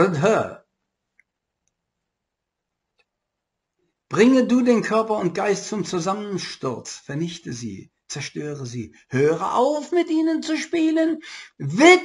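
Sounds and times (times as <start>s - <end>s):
man speaking: 0.0s - 0.7s, 4.1s - 12.0s.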